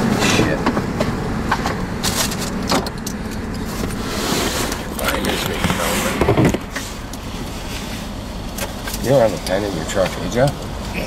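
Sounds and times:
car engine idling rumble: 0:00.0 - 0:11.0.

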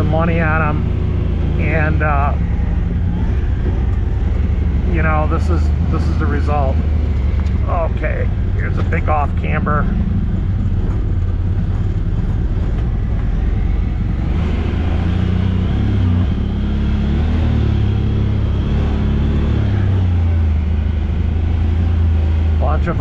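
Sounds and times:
engine running at low revs: 0:00.0 - 0:23.0.

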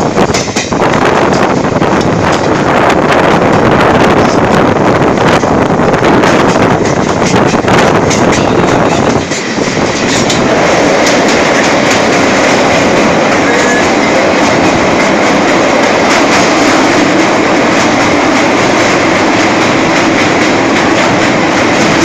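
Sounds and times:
faint regular clicks of train: 0:00.0 - 0:22.0
train wheels rumbling on rails: 0:00.0 - 0:22.0.

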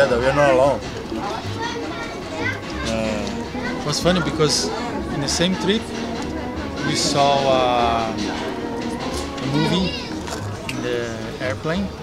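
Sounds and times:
faint music: 0:00.0 - 0:12.0
interview speech: 0:00.0 - 0:12.0.

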